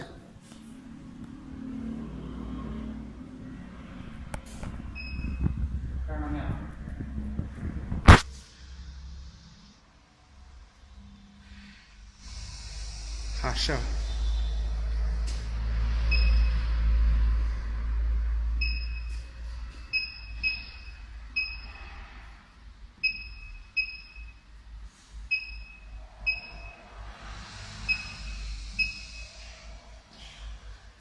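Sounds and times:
low rumble: 0:00.8 - 0:20.2, 0:24.6 - 0:31.0.

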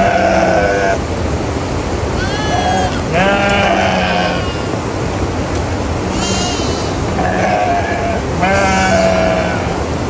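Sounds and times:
sheep bleating: 0:00.0 - 0:01.0, 0:02.2 - 0:04.7, 0:06.1 - 0:09.8
low background noise: 0:00.0 - 0:10.0.

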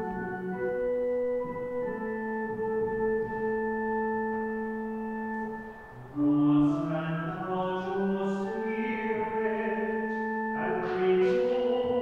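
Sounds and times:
church organ chord: 0:00.0 - 0:12.0
person singing: 0:06.1 - 0:12.0.

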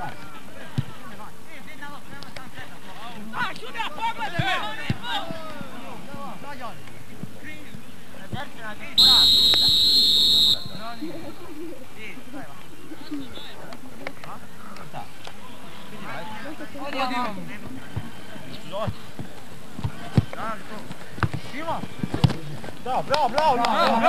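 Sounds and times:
players shouting: 0:09.0 - 0:11.0
referee's whistle blast: 0:09.0 - 0:11.0.

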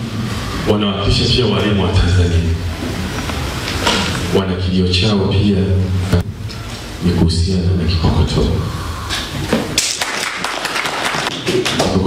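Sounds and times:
man talking: 0:00.7 - 0:02.7, 0:04.2 - 0:06.3, 0:07.0 - 0:08.7.

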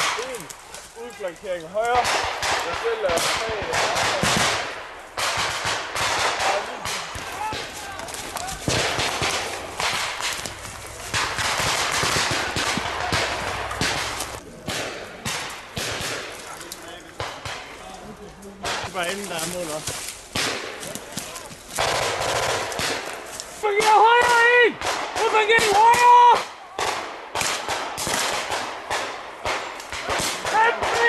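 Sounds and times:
rifle gunfire: 0:02.0 - 0:16.4, 0:21.8 - 0:23.3, 0:26.8 - 0:31.0.

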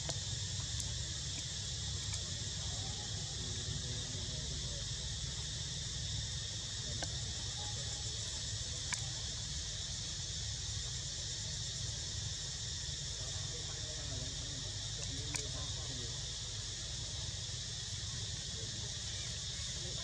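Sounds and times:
high-pitched insect chorus: 0:00.0 - 0:20.0
faint clicks: 0:08.8 - 0:09.1, 0:15.0 - 0:15.6.

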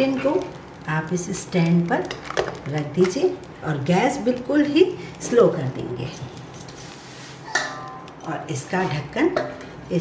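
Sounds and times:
metal lid clinking cookware: 0:07.5 - 0:08.4.

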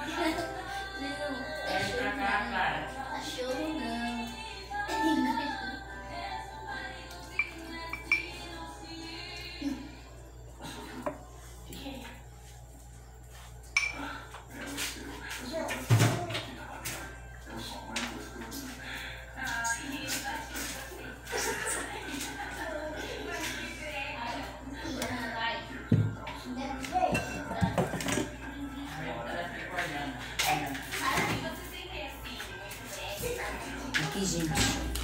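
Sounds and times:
background music with voice: 0:00.0 - 0:35.0
metal spoon clinking on cup and pan: 0:07.4 - 0:08.4.

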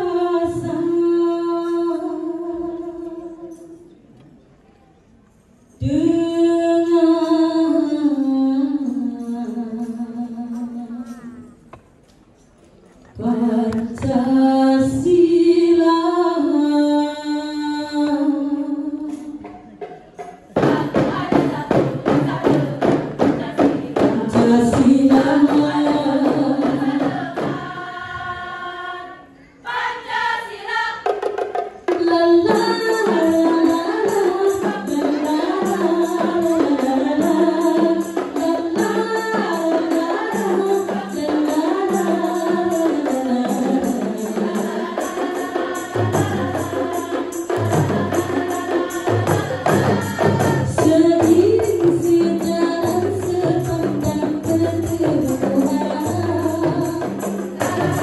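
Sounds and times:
women singing a long note: 0:00.0 - 0:03.9, 0:05.8 - 0:11.6, 0:13.1 - 0:19.5, 0:20.6 - 0:58.0.

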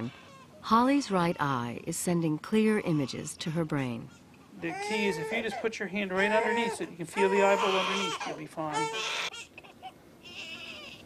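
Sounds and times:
infant crying: 0:04.6 - 0:11.0.

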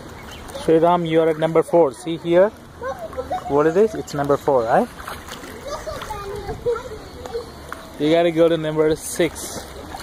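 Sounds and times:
water splashing in pool: 0:00.0 - 0:10.0
faint voices: 0:00.4 - 0:10.0.

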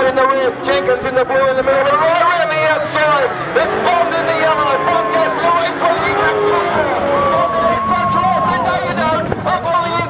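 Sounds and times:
sidecar engines racing: 0:00.0 - 0:10.0.

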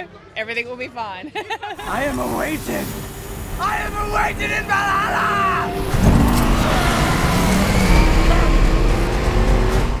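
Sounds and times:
film score music: 0:01.8 - 0:10.0
car engine revving hard: 0:05.7 - 0:10.0.

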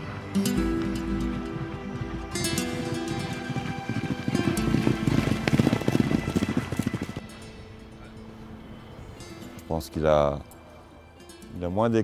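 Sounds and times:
guitar music: 0:00.0 - 0:12.0
horses galloping on turf: 0:00.8 - 0:07.4.

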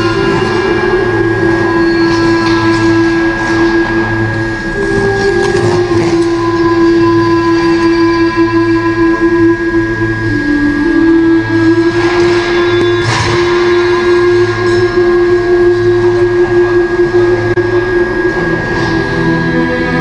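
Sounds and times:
music with sustained notes: 0:00.0 - 0:20.0.

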